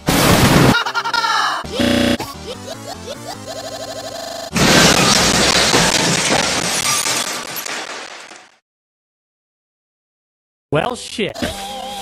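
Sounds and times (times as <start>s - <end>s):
glass shattering: 4.6s - 8.5s.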